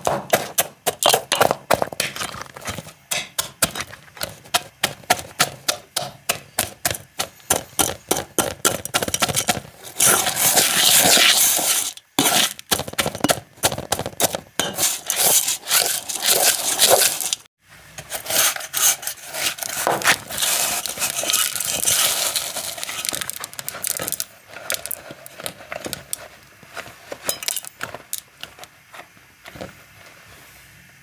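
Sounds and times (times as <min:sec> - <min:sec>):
granular material crunching in steel pot: 0:00.0 - 0:29.5.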